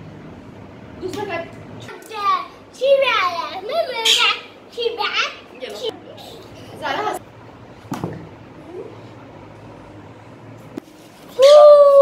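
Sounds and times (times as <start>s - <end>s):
young children calling and chattering: 1.1s - 7.2s.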